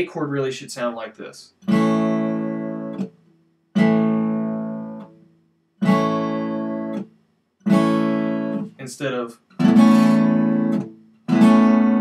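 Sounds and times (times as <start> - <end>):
acoustic guitar strumming chord: 1.6 - 3.2, 3.8 - 12.0.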